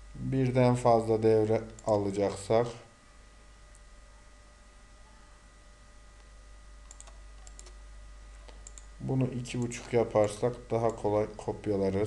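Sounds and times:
low electrical hum: 0.0s - 12.0s
computer mouse and key clicks: 1.6s - 2.8s, 6.2s - 7.8s, 8.4s - 8.9s, 9.5s - 11.1s.

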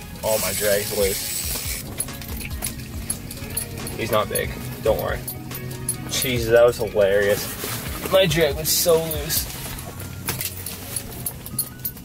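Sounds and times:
background music: 0.0s - 12.0s
fishing reel clicking: 0.2s - 1.9s.

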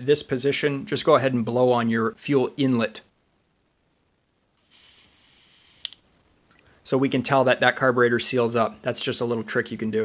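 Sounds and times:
breath blown into carburetor: 4.6s - 6.0s
sharp click: 5.8s - 6.6s.

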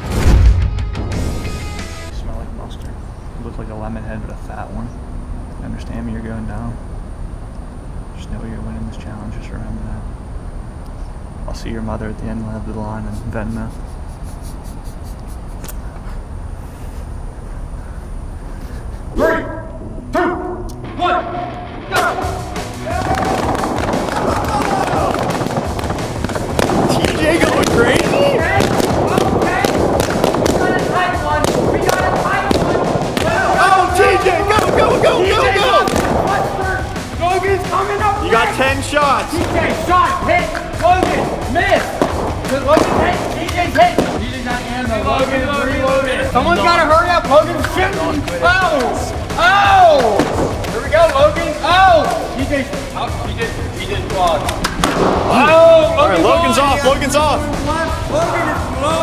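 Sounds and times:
background music: 0.0s - 2.5s, 19.2s - 59.0s
excited shouting voices: 19.2s - 25.9s, 26.8s - 50.2s, 50.8s - 52.4s, 55.3s - 59.0s.

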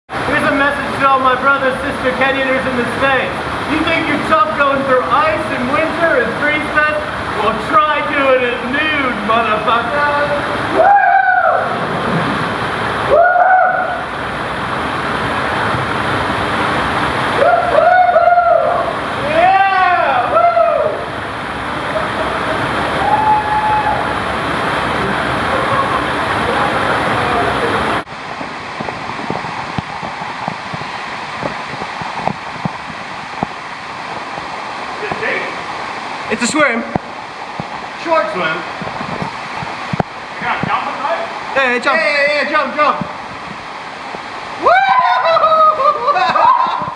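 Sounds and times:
rushing creek water: 0.1s - 46.9s
water splashing: 0.1s - 46.9s
wordless shouts: 44.6s - 46.9s.

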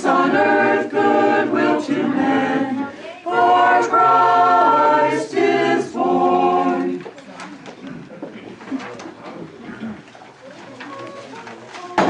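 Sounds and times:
murmuring voices: 0.0s - 12.0s.

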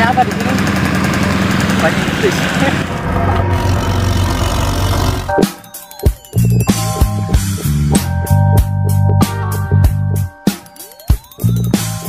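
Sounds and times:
low rumble: 1.3s - 5.4s
background music: 4.3s - 12.0s.

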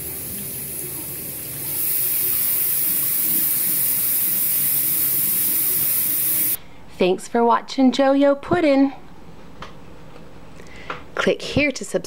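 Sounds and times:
faucet water splashing into sink: 0.0s - 6.6s.

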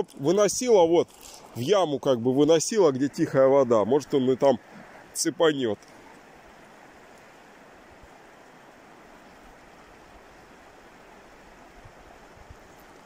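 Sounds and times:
river flowing over gravel: 0.0s - 13.0s.

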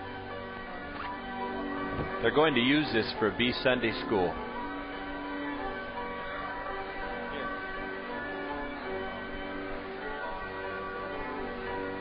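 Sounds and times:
bell-like chiming tones: 0.0s - 12.0s.

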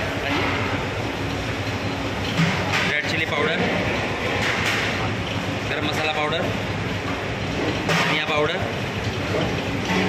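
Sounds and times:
gas range burner roaring: 0.0s - 10.0s.

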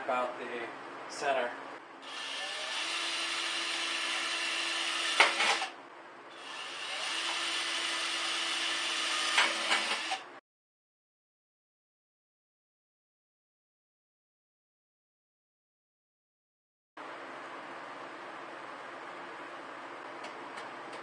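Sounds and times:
cordless drill boring through steel: 2.0s - 10.3s
sharp drill click: 2.1s - 5.8s, 6.4s - 10.2s.

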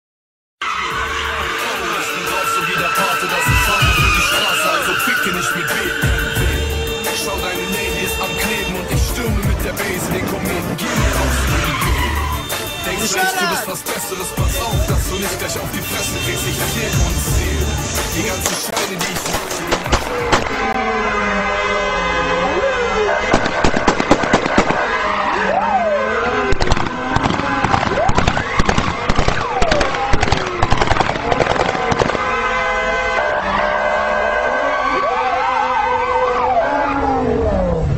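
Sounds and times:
tyres squealing: 0.6s - 20.8s
car engine running: 5.8s - 13.0s, 13.6s - 20.8s
background voices: 6.9s - 20.7s
sharp bangs: 13.9s - 20.8s, 23.3s - 24.9s, 26.5s - 32.6s.

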